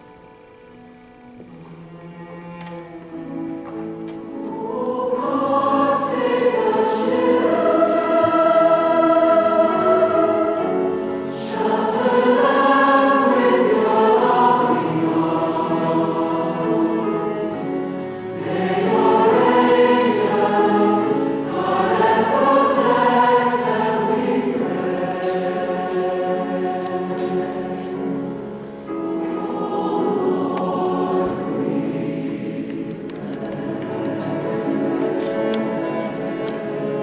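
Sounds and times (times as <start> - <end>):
choir singing in harmony: 3.1 - 37.0.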